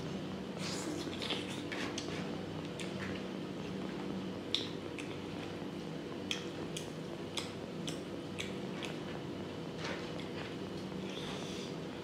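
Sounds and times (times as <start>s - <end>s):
steady low hum: 0.0s - 12.0s
wet chewing clicks and smacks: 1.0s - 3.3s, 4.5s - 5.6s, 6.2s - 9.1s.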